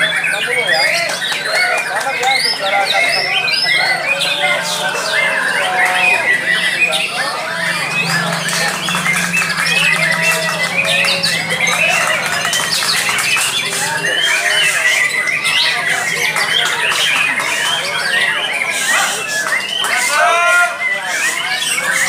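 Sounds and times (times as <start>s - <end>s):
songbirds singing: 0.0s - 22.0s.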